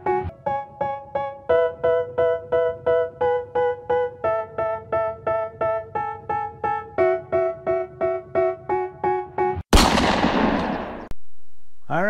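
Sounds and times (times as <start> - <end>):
loud bang: 9.7 - 11.4.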